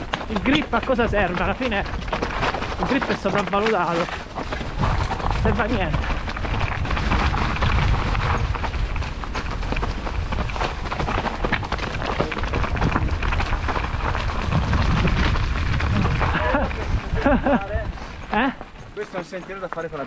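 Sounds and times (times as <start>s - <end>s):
wind over microphone: 0.0s - 19.7s
bike rattling and clattering: 0.0s - 20.0s
tyres rolling over leaves and stones: 0.0s - 20.0s.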